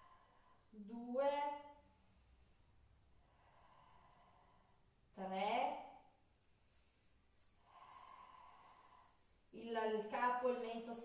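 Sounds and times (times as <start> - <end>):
woman speaking: 0.8 - 1.6, 5.2 - 5.9, 9.6 - 11.0
woman breathing out: 7.6 - 9.3.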